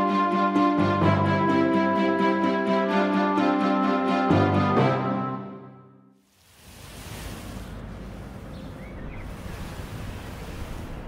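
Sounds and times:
faint chirp: 0:08.3 - 0:10.6.

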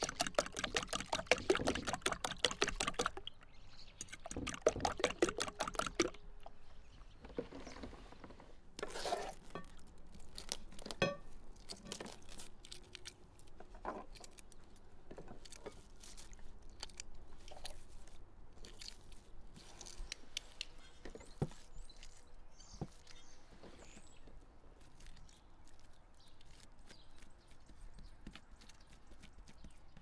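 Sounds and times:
eggshells crackling: 0:00.0 - 0:06.6
small clicks and crackles: 0:09.5 - 0:24.2.

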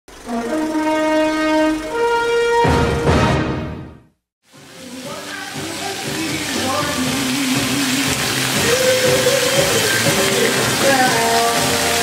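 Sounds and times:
sustained horn-like chord: 0:00.1 - 0:03.9.

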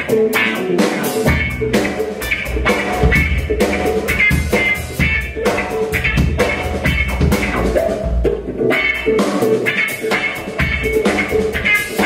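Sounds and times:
bass guitar: 0:00.0 - 0:12.0
drum kit steady beat: 0:00.0 - 0:12.0
electric guitar: 0:00.0 - 0:12.0.

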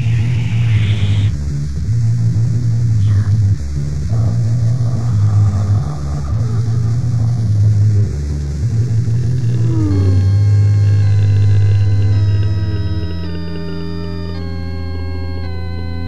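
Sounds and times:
low droning rumble: 0:00.0 - 0:15.5
synthesizer chord tones: 0:06.0 - 0:16.0.

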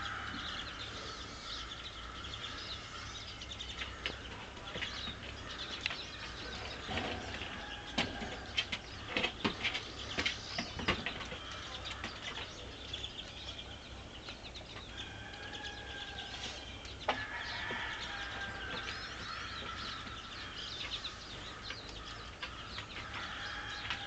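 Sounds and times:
drawn-out bird calls: 0:00.0 - 0:24.0
finches twittering: 0:00.0 - 0:24.0.

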